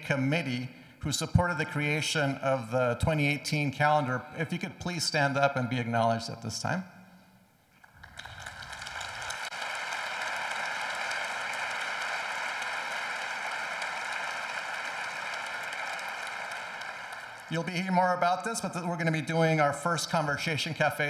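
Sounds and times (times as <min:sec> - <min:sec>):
audience applauding: 0:07.8 - 0:17.8.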